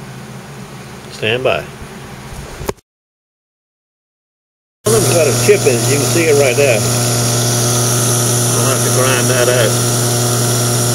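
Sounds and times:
steady machine hum: 4.9s - 10.9s.

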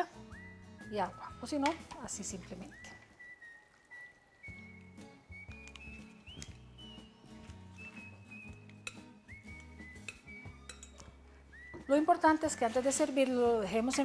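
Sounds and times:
soft whistle-like background music: 0.0s - 14.0s
clinks of food and utensils: 8.6s - 9.2s, 10.0s - 11.2s.

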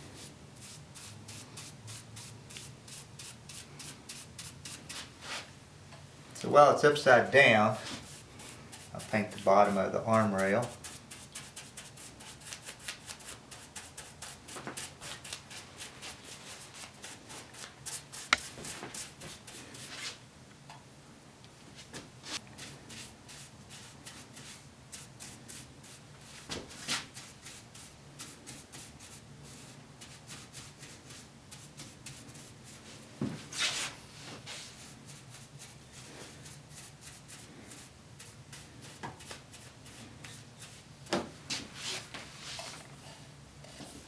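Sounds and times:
paintbrush bristles rubbing on wood: 0.2s - 5.5s, 7.5s - 20.2s, 22.3s - 40.9s.

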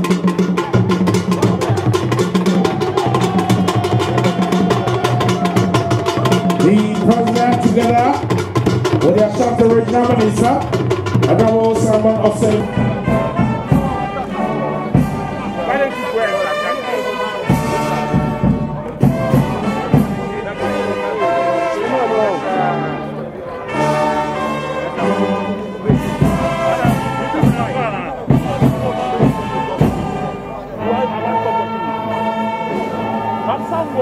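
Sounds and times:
brass band playing: 0.0s - 34.0s.

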